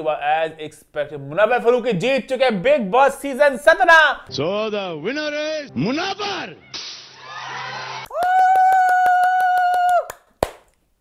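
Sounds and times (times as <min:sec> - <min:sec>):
studio audience cheering: 0:07.1 - 0:10.2.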